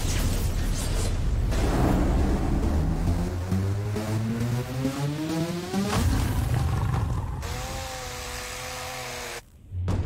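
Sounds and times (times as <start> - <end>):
cut-off saw grinding metal: 7.4 - 9.4.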